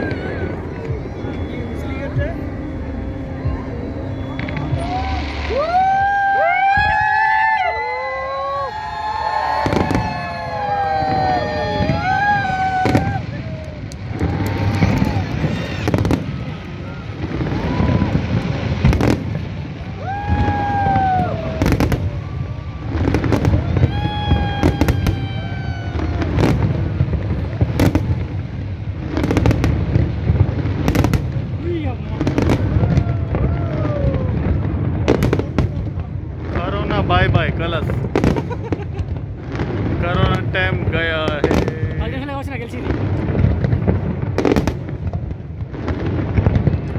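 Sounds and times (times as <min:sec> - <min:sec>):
continuous low rumble: 0:00.0 - 0:46.9
fireworks bursting: 0:00.0 - 0:46.9.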